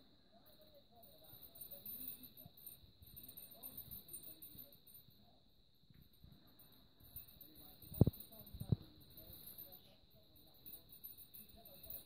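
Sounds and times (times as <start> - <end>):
cage toys jingling: 0.5 - 5.4, 6.1 - 12.0.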